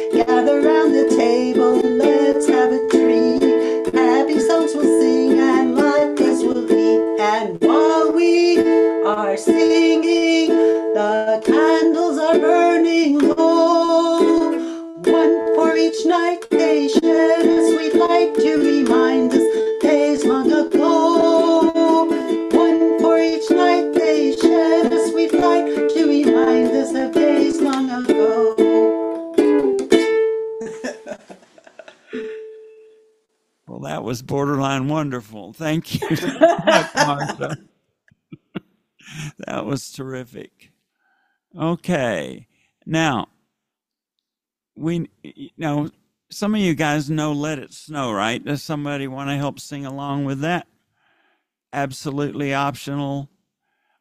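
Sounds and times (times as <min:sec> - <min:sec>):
ukulele strumming: 0:00.0 - 0:32.9, 0:35.9 - 0:37.6.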